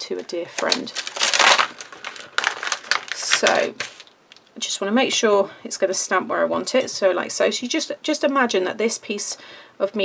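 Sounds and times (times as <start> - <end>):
plastic sheet crinkling: 0.0 - 4.5.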